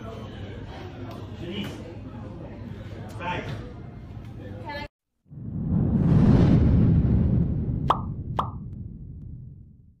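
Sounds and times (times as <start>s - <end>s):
rumbling whoosh: 5.3s - 10.0s.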